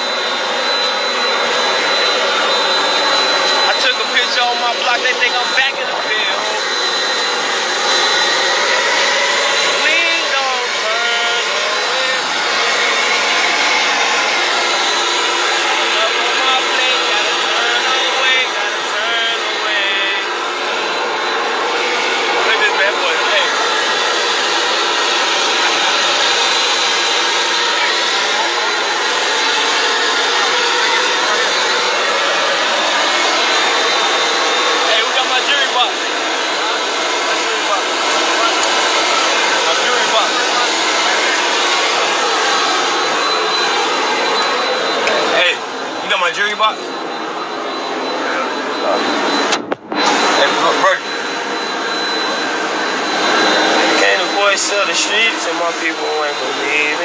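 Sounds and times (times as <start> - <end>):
faint man's voice: 3.6 - 7.0, 9.7 - 12.9, 15.5 - 20.3, 22.3 - 23.6, 34.8 - 36.0, 37.1 - 42.2, 45.1 - 46.9, 48.2 - 49.3, 50.0 - 51.1, 53.8 - 57.0.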